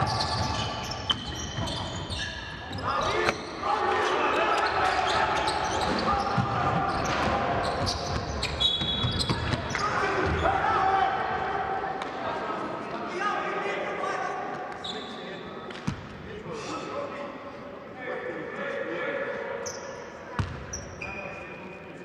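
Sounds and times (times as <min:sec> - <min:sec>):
sneaker squeaks: 0:00.0 - 0:10.6, 0:14.7 - 0:16.0, 0:19.6 - 0:22.0.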